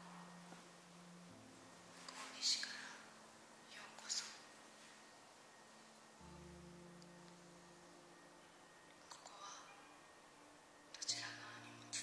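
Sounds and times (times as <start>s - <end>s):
low steady hum: 0.0s - 12.0s
soft hiss: 0.0s - 12.0s.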